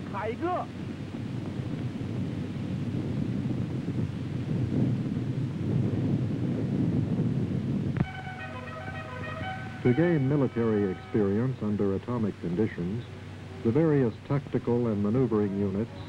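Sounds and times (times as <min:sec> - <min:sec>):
music with held notes: 0:08.0 - 0:11.5.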